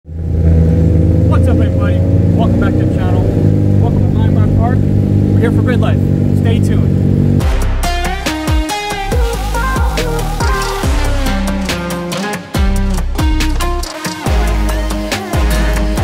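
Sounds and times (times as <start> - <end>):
steady engine rumble: 0.1 - 16.0
man talking: 1.3 - 6.9
electronic music: 7.4 - 16.0.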